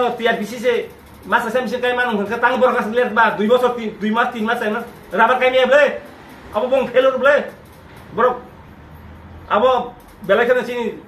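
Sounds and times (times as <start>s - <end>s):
man speaking: 0.0s - 8.6s, 9.5s - 11.0s.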